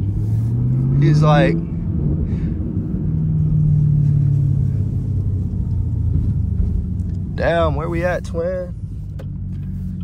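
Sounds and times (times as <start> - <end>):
engine drone from inside car: 0.0 - 10.0
road rumble: 0.0 - 10.0.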